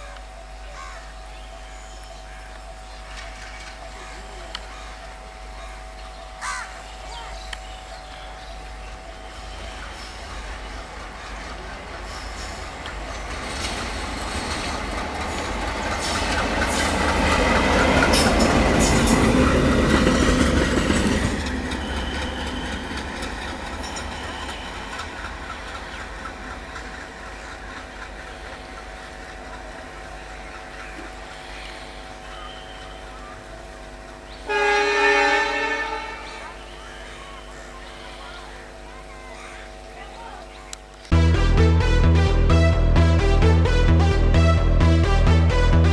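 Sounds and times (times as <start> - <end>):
diesel locomotive passing: 0.0 - 45.9
wheels clattering over rail joints: 10.6 - 30.8
locomotive horn blast: 34.4 - 36.7.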